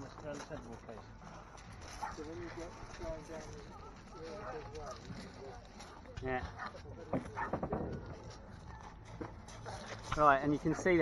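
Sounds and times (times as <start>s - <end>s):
feet crunching on shingle: 0.0s - 10.7s.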